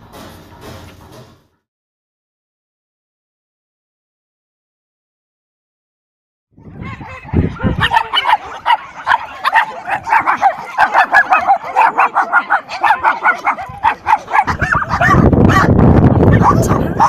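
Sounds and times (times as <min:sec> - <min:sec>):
dogs barking and yapping: 0:06.6 - 0:17.0.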